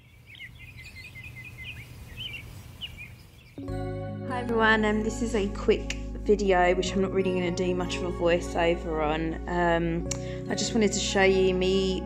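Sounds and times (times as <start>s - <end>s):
songbirds chirping: 0.0s - 4.0s
background music: 3.6s - 12.0s.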